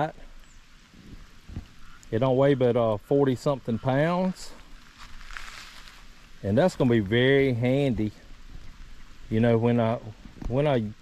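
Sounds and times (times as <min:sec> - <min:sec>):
outdoor background hiss: 0:00.0 - 0:11.0
faint low thump: 0:01.0 - 0:01.8.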